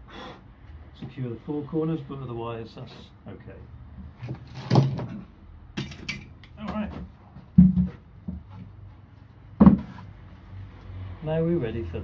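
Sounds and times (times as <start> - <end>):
wooden box knocking on workbench: 7.6 - 8.5, 9.6 - 10.0.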